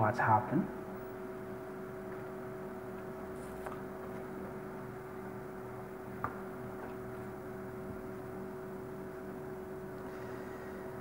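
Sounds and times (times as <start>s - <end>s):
steady background hum: 0.0s - 11.0s
faint steady tones: 0.2s - 11.0s.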